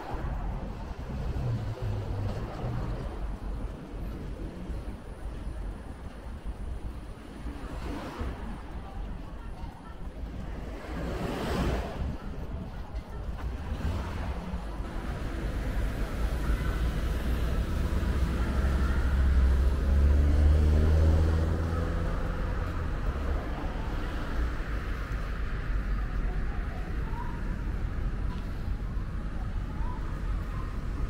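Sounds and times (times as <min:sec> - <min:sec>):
heavy vehicle engine hum: 0:00.0 - 0:31.0
road traffic passing: 0:00.0 - 0:31.0.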